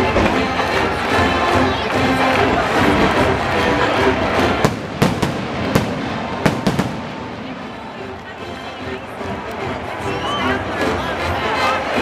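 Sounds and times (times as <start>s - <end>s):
crowd: 0.0s - 12.0s
stadium music: 0.0s - 12.0s
sharp bangs: 4.6s - 7.8s.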